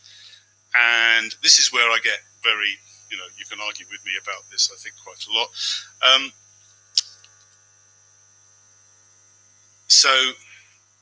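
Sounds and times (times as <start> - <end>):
electrical mains hum: 0.0 - 11.0
faint high-pitched whine: 0.0 - 11.0.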